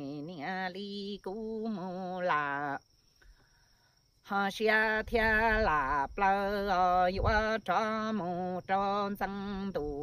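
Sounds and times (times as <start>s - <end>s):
breaths: 3.0s - 4.2s
man chanting sung poetry: 4.3s - 10.0s.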